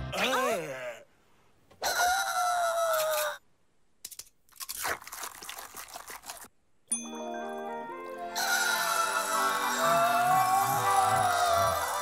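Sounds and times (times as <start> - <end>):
cartoon crunchy chewing: 4.5 - 6.5.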